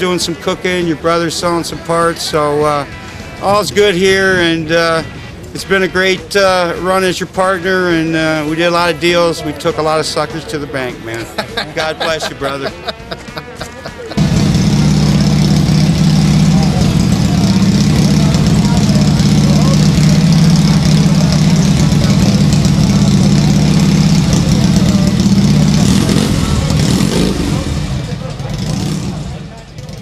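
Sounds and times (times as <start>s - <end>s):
motorcycle engine running: 13.0s - 30.0s.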